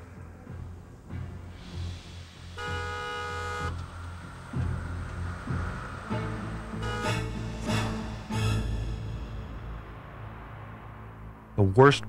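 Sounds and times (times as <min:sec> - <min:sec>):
dramatic background music: 0:00.0 - 0:11.8
vehicle horn blaring: 0:02.5 - 0:03.9, 0:06.7 - 0:09.1.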